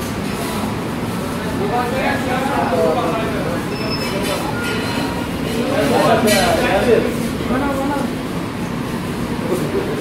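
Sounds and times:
steady noisy hum: 0.0s - 10.0s.

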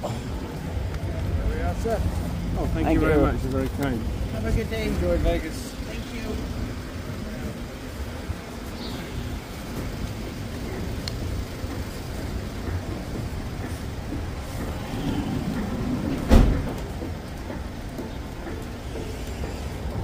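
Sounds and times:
vehicle engine rumble: 0.0s - 20.0s.

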